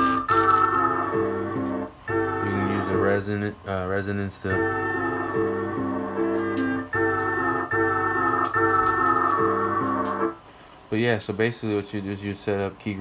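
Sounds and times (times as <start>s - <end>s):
sustained sampled chords: 0.0s - 3.5s, 4.5s - 10.4s
bright ringing filter resonance: 0.0s - 10.4s.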